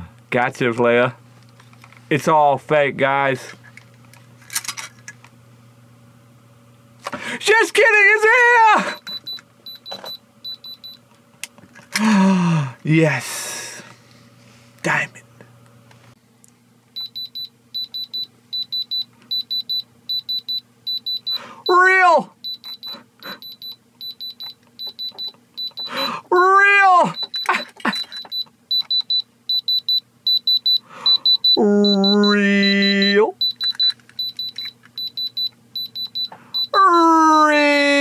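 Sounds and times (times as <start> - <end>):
man calling ahh: 7.3 - 9.1, 21.4 - 23.4, 25.9 - 27.2, 31.0 - 33.4, 36.7 - 38.0
diamond tester short high beeps: 22.5 - 26.1, 27.2 - 36.8.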